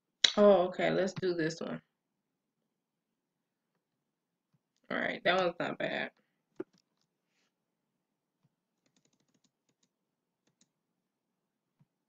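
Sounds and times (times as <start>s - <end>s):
keyboard and mouse clicks: 8.8s - 10.7s.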